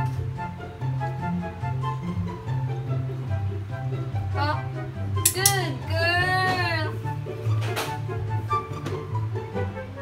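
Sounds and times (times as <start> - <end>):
light background music: 0.0 - 10.0.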